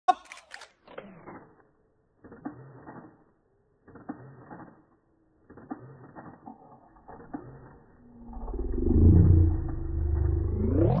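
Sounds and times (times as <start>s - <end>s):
deep drawn-out tone: 8.0s - 11.0s.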